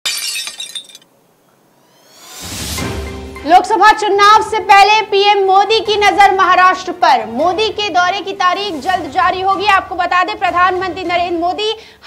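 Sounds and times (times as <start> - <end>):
glass shattering: 0.0 - 1.1.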